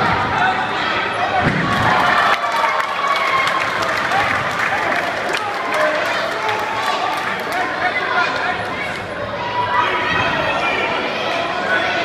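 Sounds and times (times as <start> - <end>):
voices shouting and talking: 0.0 - 12.0
crowd applauding: 1.7 - 7.8.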